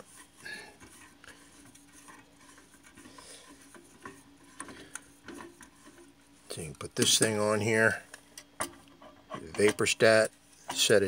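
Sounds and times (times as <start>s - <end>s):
metal rubbing: 0.0s - 11.0s.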